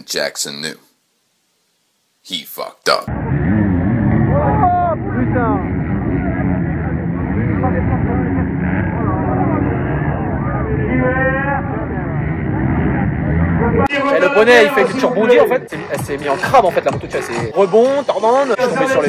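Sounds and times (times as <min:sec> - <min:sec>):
voices: 0:02.3 - 0:19.0
dirt bike engines droning: 0:03.1 - 0:14.3.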